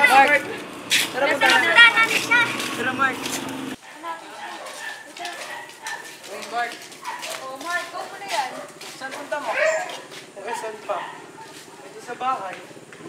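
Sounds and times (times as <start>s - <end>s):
dog barking: 3.8s - 6.2s, 7.0s - 7.6s, 8.4s - 11.9s.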